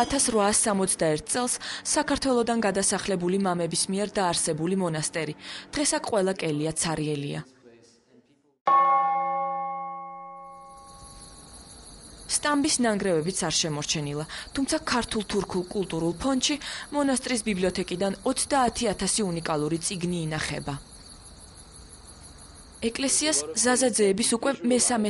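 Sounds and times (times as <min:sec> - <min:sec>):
bell ringing: 0:08.7 - 0:11.4
crickets trilling: 0:10.6 - 0:23.8.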